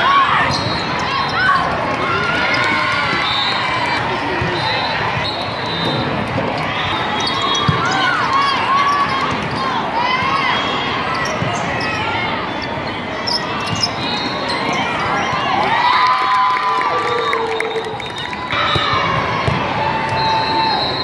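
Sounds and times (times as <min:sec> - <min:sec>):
sneakers squeaking on court: 0:00.4 - 0:01.6, 0:05.2 - 0:09.6, 0:11.1 - 0:15.5.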